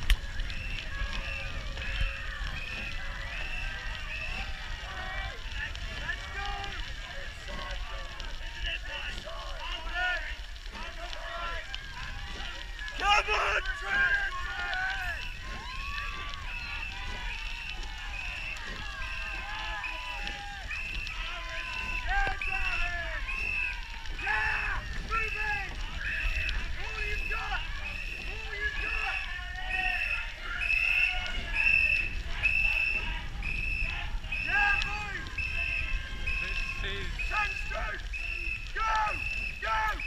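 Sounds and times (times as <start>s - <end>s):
supporters shouting: 0.0s - 40.0s.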